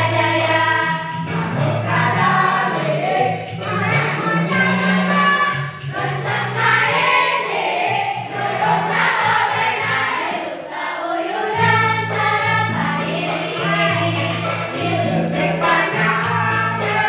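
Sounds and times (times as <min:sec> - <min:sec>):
teenage students singing as a choir: 0:00.0 - 0:17.0.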